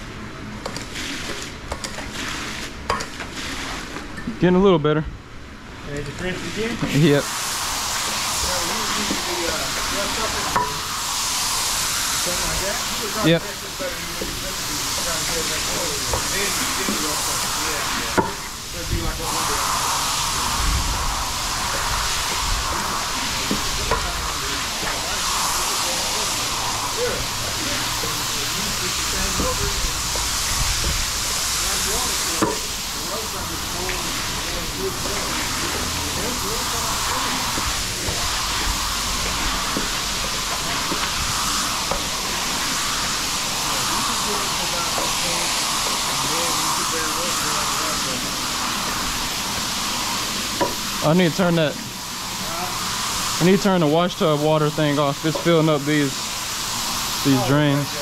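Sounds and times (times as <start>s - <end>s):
running water hissing: 0.0s - 4.2s, 5.8s - 58.0s
squeegee swishing water on rug: 2.1s - 4.0s.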